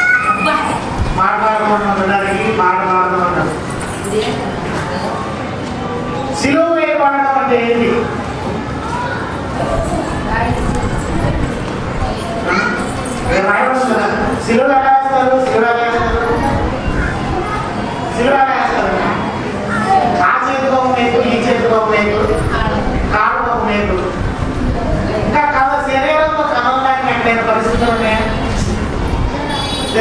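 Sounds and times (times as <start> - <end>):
man preaching into a microphone: 1.2 - 3.6, 6.4 - 8.2, 13.3 - 16.4, 18.1 - 19.2, 20.1 - 24.2, 25.2 - 28.9, 29.8 - 30.0.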